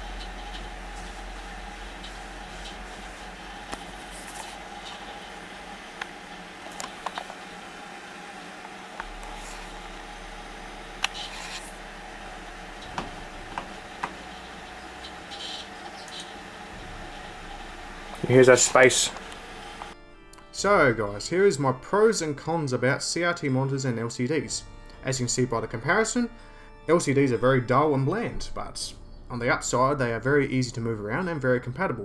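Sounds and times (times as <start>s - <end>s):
desktop computer hum and fan: 0.0s - 20.0s.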